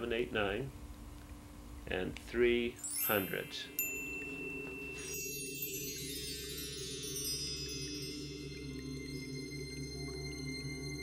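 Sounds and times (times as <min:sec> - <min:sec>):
high ringing chimes: 0:02.8 - 0:11.0
low steady drone: 0:03.2 - 0:11.0.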